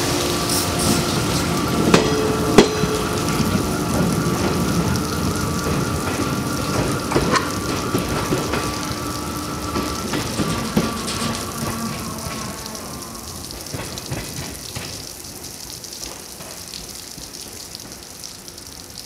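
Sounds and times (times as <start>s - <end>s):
faint machine whine: 0.0s - 14.5s
water spray hissing: 0.0s - 15.8s.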